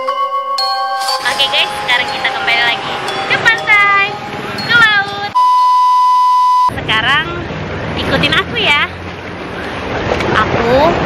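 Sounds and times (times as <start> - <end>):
flat electronic beep: 0.7 - 6.8.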